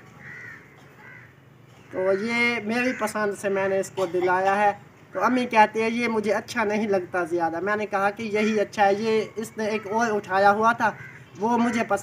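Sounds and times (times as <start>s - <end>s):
crow cawing: 0.1s - 3.5s, 8.3s - 12.0s.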